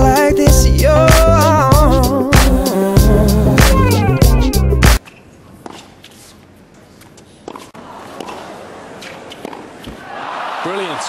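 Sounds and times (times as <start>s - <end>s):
racket hitting tennis ball: 5.0s - 6.4s, 7.0s - 10.1s
shoes scuffing: 5.0s - 10.0s.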